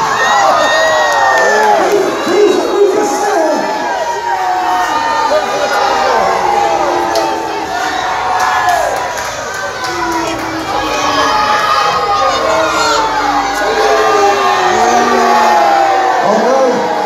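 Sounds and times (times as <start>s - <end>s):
crowd shouting and cheering: 0.0s - 17.0s.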